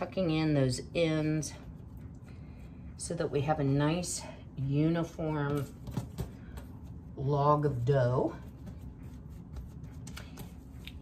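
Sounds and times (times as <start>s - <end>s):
hands rubbing bread dough: 6.4s - 11.0s.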